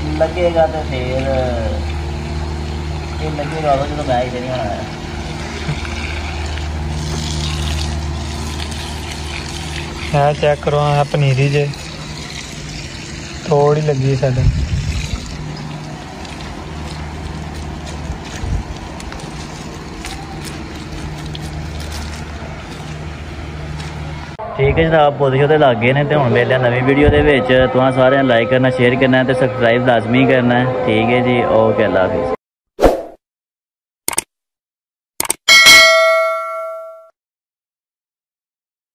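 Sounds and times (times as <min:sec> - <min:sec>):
hose water splashing on soil: 0:03.3 - 0:22.9
notification bell ringing: 0:35.5 - 0:37.1.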